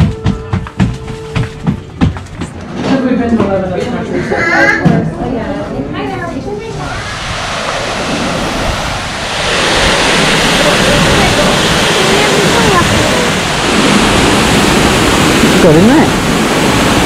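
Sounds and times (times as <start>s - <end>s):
waterfall rushing: 6.7s - 17.0s.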